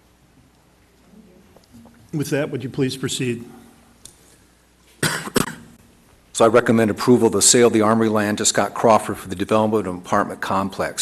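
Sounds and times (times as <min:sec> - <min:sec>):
person coughing: 0:05.0 - 0:05.8.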